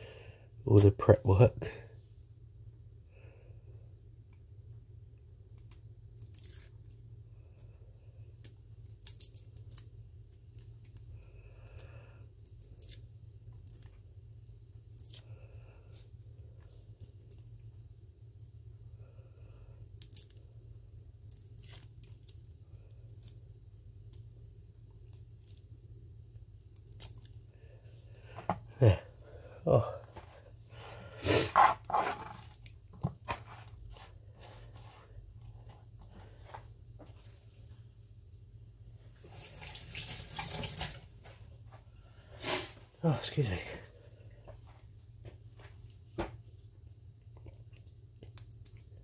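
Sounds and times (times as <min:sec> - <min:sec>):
steady low hum: 0:00.0 - 0:39.4, 0:41.0 - 0:49.0
garlic skin crackling: 0:05.6 - 0:07.0, 0:08.4 - 0:11.0, 0:11.6 - 0:14.0, 0:14.9 - 0:15.3, 0:19.9 - 0:20.4, 0:21.2 - 0:23.4.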